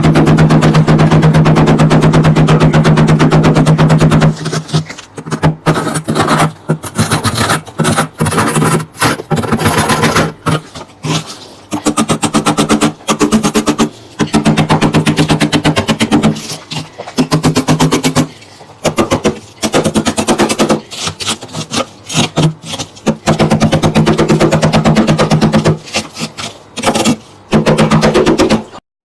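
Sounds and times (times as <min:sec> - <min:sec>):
scraper rattling on frost: 0:00.0 - 0:28.8.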